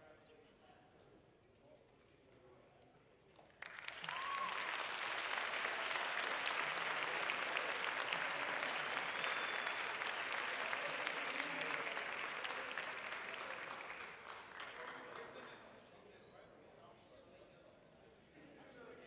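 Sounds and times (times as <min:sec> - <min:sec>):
audience applause: 0:03.6 - 0:15.6.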